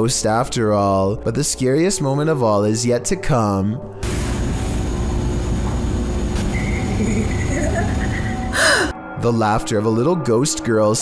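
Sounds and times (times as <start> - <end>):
steady low rumble: 4.0 - 8.7
faint laughter: 6.8 - 8.9.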